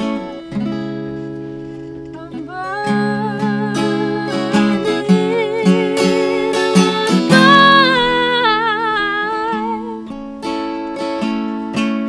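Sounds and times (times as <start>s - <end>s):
strummed acoustic guitar: 0.0s - 12.0s
woman singing: 2.2s - 12.0s.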